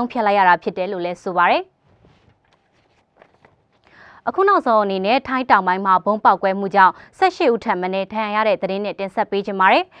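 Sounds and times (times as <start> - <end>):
paper sheets rustling: 1.9 - 3.8.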